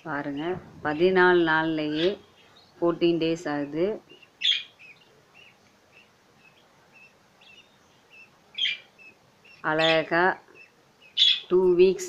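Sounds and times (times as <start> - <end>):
bird chicks peeping: 0.1 - 11.7.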